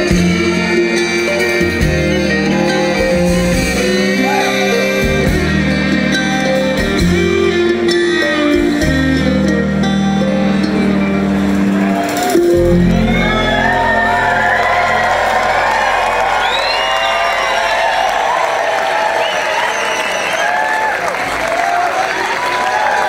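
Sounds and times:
audience cheering and applauding: 0.0s - 5.1s, 11.3s - 23.0s
upright bass ringing: 0.0s - 18.2s
bluegrass band playing: 0.0s - 18.4s.

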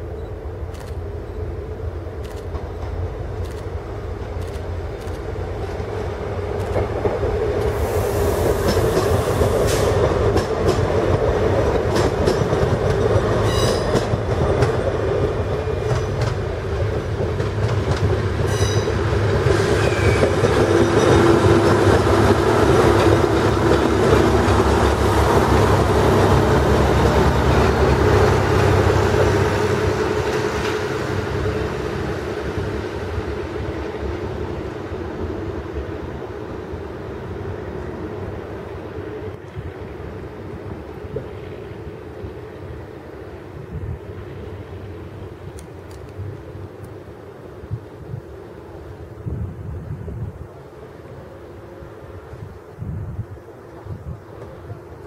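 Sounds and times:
diesel railcar engine hum: 0.0s - 55.0s.

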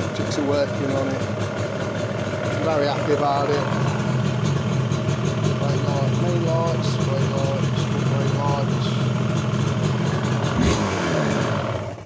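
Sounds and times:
two-stroke motorcycle engine idling: 0.0s - 12.0s.

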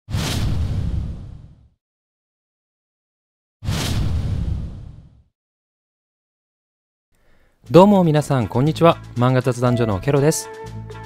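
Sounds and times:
whoosh and boom sound effect: 0.1s - 1.8s, 3.6s - 5.3s.

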